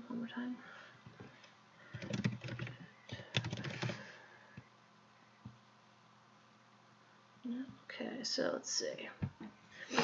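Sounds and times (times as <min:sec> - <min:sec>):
keyboard typing: 0:01.9 - 0:04.1.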